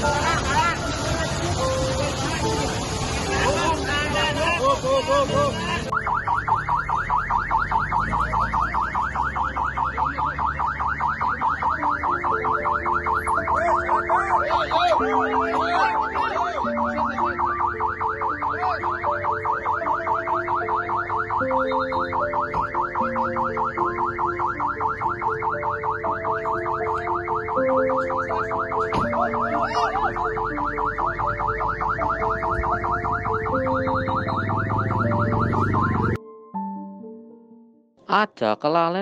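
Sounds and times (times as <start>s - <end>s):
ambulance siren warbling: 0.0s - 36.2s
background music with held notes: 0.0s - 38.9s.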